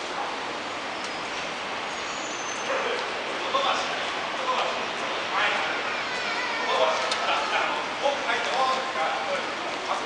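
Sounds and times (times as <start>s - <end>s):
shopping mall hubbub: 0.0s - 10.0s.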